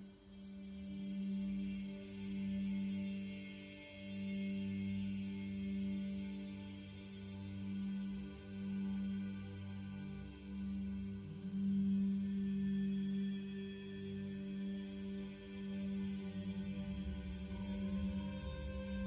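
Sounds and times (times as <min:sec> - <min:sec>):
ambient meditation music: 0:00.0 - 0:19.0.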